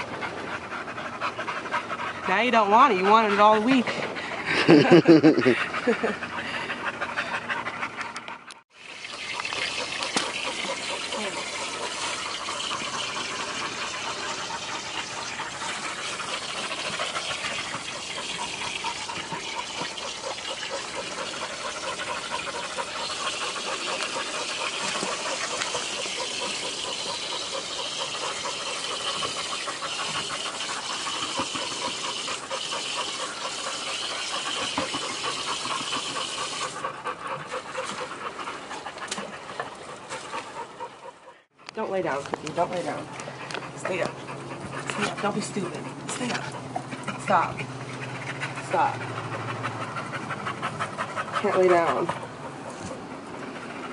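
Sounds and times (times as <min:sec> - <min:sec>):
dogs panting hard: 0:00.0 - 0:53.9.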